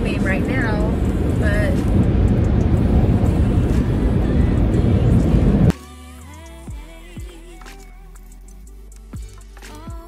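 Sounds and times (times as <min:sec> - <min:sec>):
loud steady rushing noise: 0:00.0 - 0:05.7
music with sung melody: 0:01.5 - 0:10.0.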